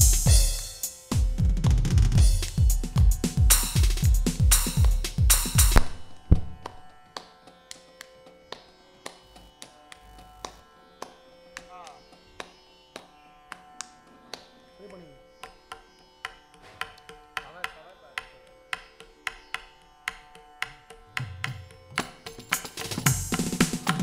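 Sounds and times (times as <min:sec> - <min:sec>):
electronic drum pad strokes: 0:00.0 - 0:06.9.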